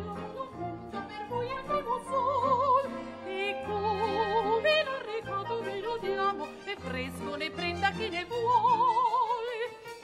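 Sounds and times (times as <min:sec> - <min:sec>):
woman singing operatically: 0:00.0 - 0:10.0.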